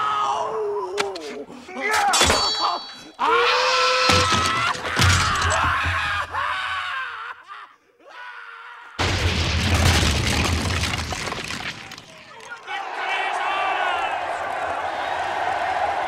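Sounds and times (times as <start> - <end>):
loud explosion with deep rumble: 9.0 - 11.8
crowd cheering: 12.0 - 16.0.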